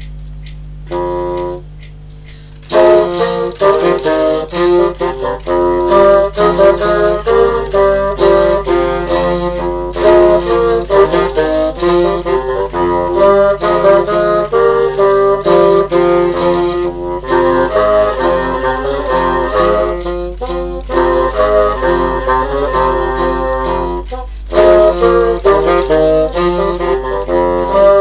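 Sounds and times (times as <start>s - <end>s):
bassoons playing in harmony: 0.7s - 28.0s.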